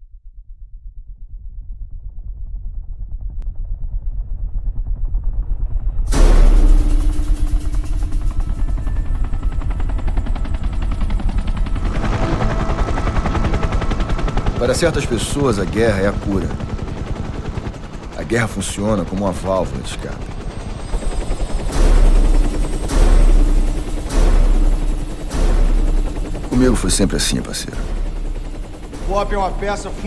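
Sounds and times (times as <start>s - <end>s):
helicopter rotor chop: 4.5s - 30.0s
sudden loud hit: 6.1s - 9.3s.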